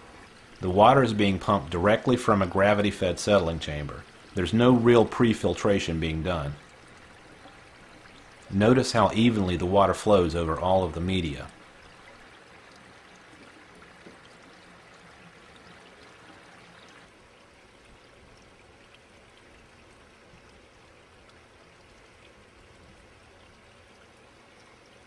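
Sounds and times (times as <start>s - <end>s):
water trickling and splashing: 0.0s - 25.0s.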